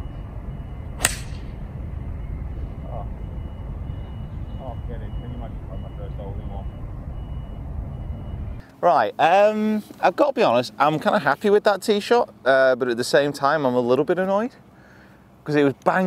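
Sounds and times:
low rumble: 0.0s - 8.6s
golf club striking ball: 1.0s - 1.7s.

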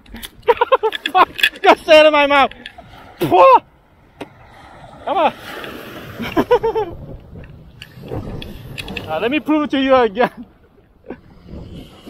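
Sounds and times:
wind on microphone: 0.0s - 12.0s
small waves breaking on beach: 1.4s - 12.0s.

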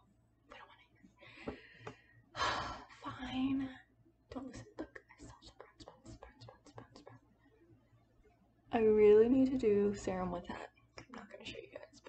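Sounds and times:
woman whispering: 0.5s - 1.0s, 2.9s - 7.2s, 10.4s - 12.0s.

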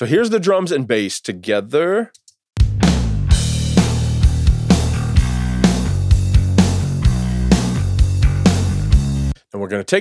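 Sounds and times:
kick and snare drum beat: 2.6s - 9.1s
bass guitar line: 2.6s - 9.4s.

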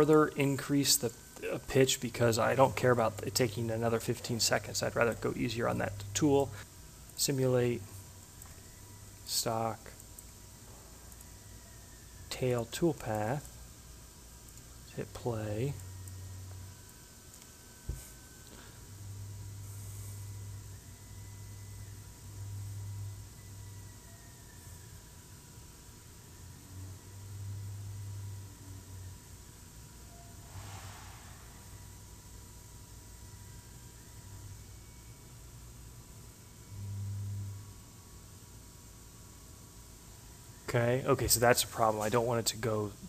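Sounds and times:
low hum: 0.0s - 43.0s
thin high whine: 0.0s - 43.0s.

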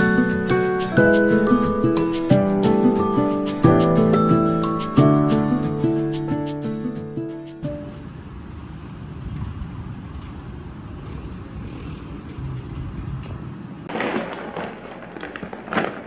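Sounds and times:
distant city traffic rumble: 7.3s - 16.0s
plastic bag crinkling: 13.9s - 16.0s.

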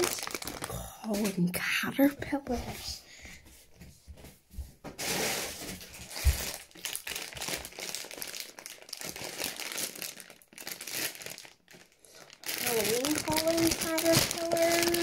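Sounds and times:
plastic packets crinkling: 0.0s - 1.6s, 5.0s - 15.0s.

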